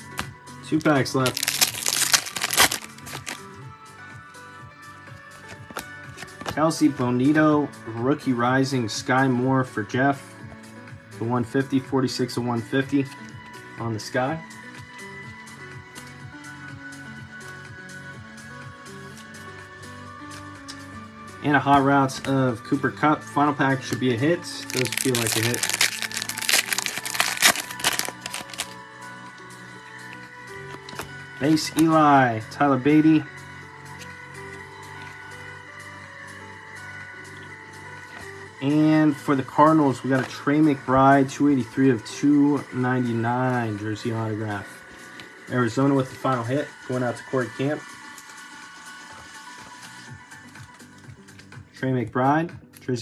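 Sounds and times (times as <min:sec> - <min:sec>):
background music: 0:00.0 - 0:53.0
wrapper tearing and crinkling: 0:01.2 - 0:03.4, 0:24.6 - 0:28.8
cards clicking: 0:01.3 - 0:03.4, 0:24.7 - 0:28.8.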